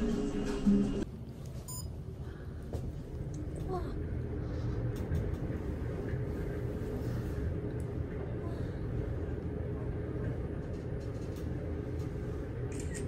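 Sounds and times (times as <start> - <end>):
elevator low rumble: 0.0 - 13.0.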